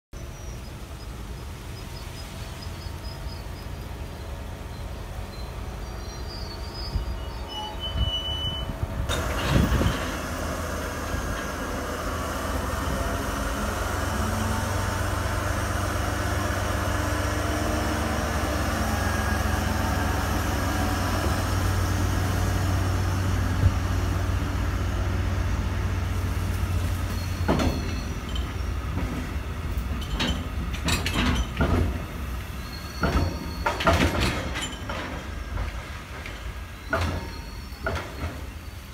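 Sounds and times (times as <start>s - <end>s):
diesel locomotive engine drone: 0.2s - 38.9s
wheel knocks over rail joints: 33.0s - 38.5s.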